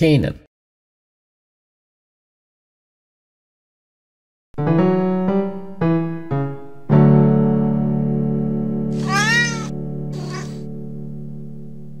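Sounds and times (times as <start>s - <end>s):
held electric piano chord: 4.6s - 12.0s
cat meowing: 9.0s - 10.6s.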